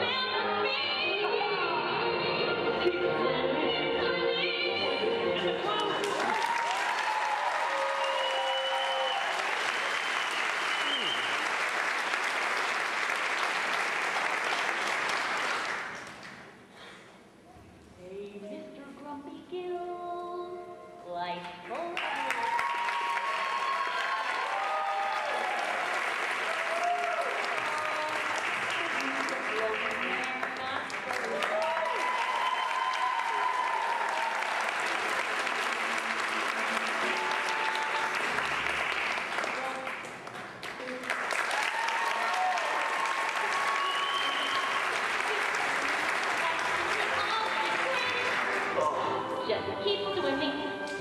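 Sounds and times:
audience applauding: 5.6s - 16.5s, 21.8s - 48.9s.

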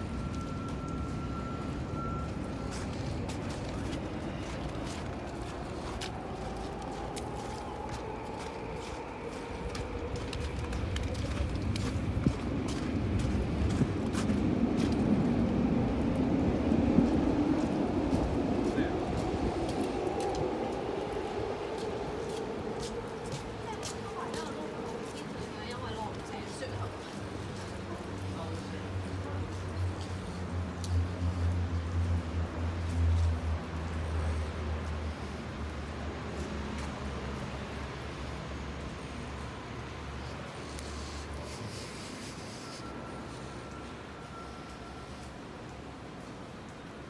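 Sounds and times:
footsteps on wet pavement: 0.0s - 47.0s
street traffic rumble: 0.0s - 47.0s.

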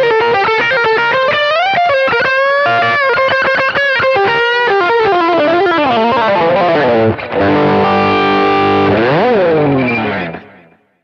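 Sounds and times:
distorted electric guitar: 0.0s - 11.0s.

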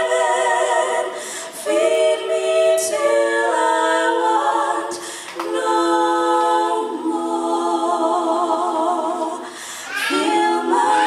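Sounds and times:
women singing a cappella harmony: 0.0s - 11.0s.

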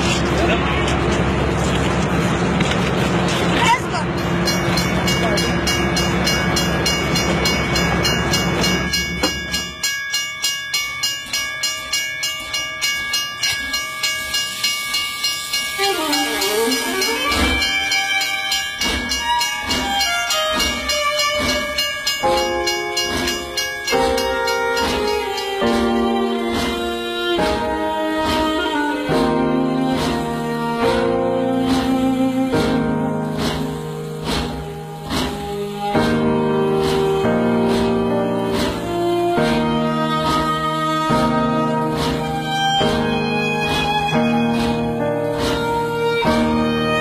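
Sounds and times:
train rumbling: 0.0s - 47.0s
train wheels clattering over rail joints: 0.0s - 47.0s
film score music with strings: 15.6s - 47.0s.

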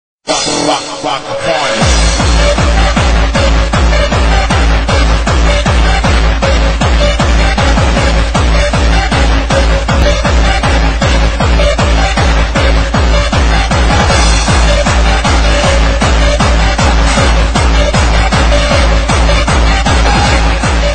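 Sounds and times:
electronic dance music: 0.2s - 20.9s.

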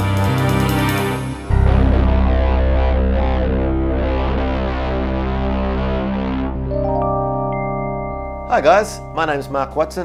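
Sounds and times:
sustained synthesizer chord: 0.2s - 10.0s
deep synthesizer bass note: 1.5s - 10.0s.

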